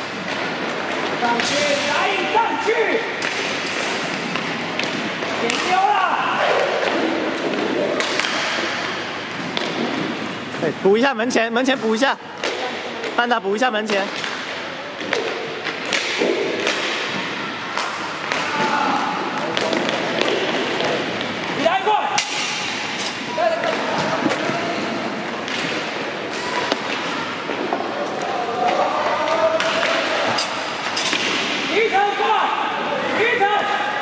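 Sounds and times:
sticks striking puck and floor: 3.2s - 5.9s, 6.8s - 10.2s, 12.4s - 13.2s, 13.8s - 21.4s, 22.1s - 24.8s, 25.4s - 31.7s.

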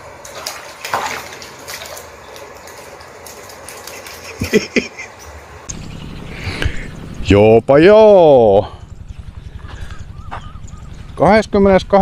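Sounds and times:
water splashing in a plastic tub: 0.0s - 4.6s.

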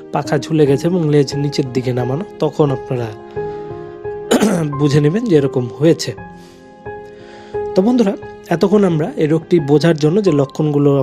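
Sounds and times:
quiet background music: 0.0s - 11.0s
person clearing throat: 4.3s - 4.8s.

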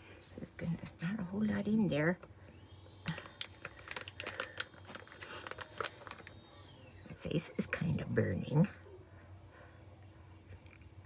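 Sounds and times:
foil pouch crinkling: 3.1s - 6.6s.

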